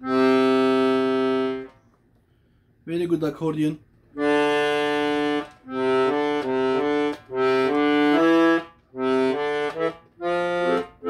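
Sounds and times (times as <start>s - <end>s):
accordion held tone: 0.0s - 1.9s, 4.1s - 11.0s.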